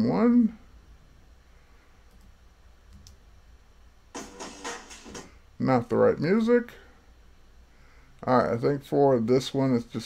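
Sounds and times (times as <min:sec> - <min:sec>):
computer mouse clicks: 0:02.9 - 0:03.2.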